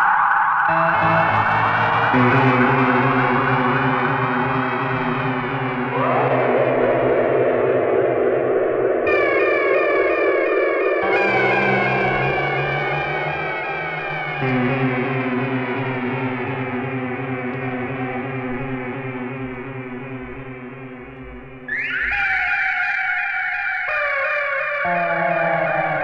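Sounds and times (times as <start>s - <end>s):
electronic synthesizer music: 0.0s - 7.9s, 9.0s - 22.8s, 24.8s - 26.0s.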